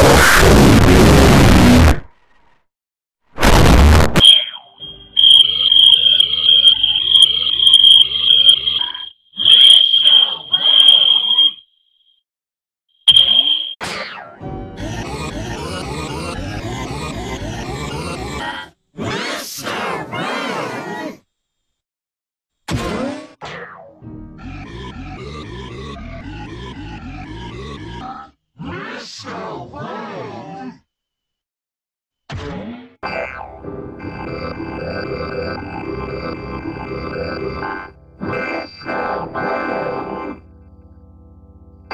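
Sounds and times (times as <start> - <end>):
loud noise burst: 3.4 - 11.3
steady high whine: 3.4 - 11.6, 13.1 - 13.8
garbled wobbling voice sounds: 5.9 - 11.4.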